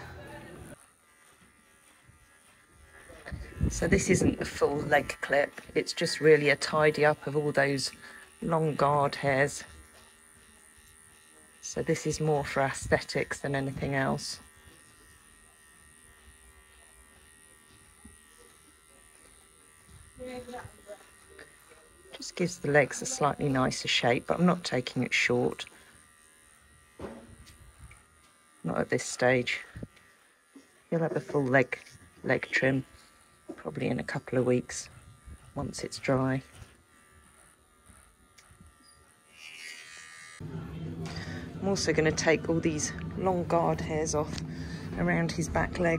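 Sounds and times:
electric horse clippers humming: 0:00.0 - 0:45.9.

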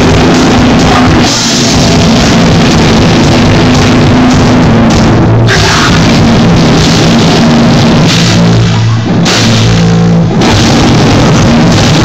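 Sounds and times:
loud live rock band: 0:00.0 - 0:12.0.

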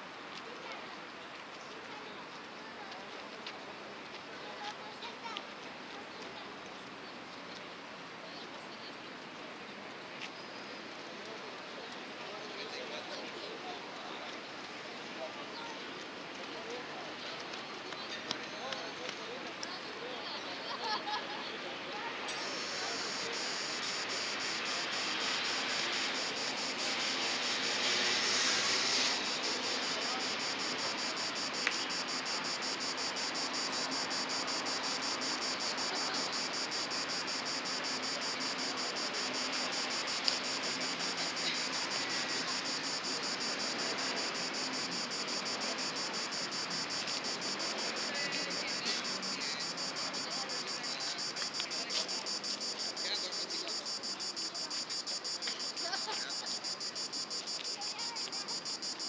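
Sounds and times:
distant traffic: 0:21.9 - 0:59.0
high pulsing chirring: 0:29.1 - 0:48.1.

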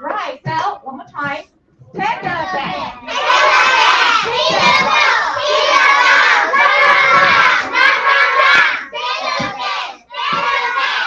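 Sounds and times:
children shouting chant in unison: 0:02.6 - 0:11.0.

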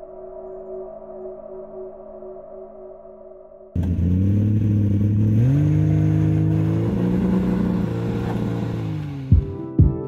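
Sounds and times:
sports car engine revving: 0:03.8 - 0:09.5.

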